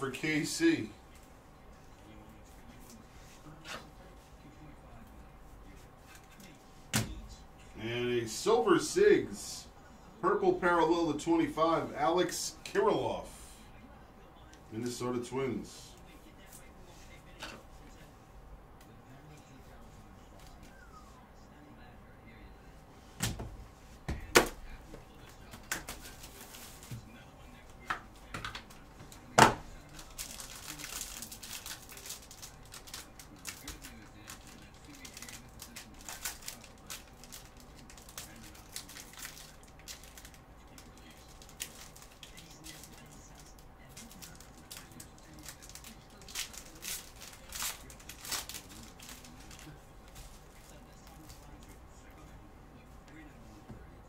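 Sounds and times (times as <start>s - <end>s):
plastic wrap crinkling: 29.2s - 51.7s.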